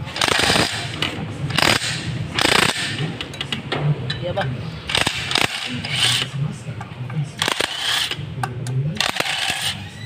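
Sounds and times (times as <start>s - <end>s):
ratchet wrench clicking: 0.2s - 3.5s, 4.9s - 6.3s, 7.4s - 8.2s, 9.0s - 9.8s.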